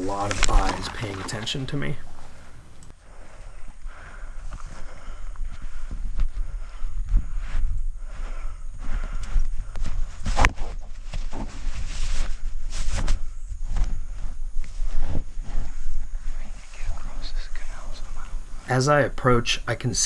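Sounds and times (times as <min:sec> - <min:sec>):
person narrating: 0:00.0 - 0:02.1
leafy suit rustling: 0:00.0 - 0:02.7
low microphone rumble: 0:03.1 - 0:18.6.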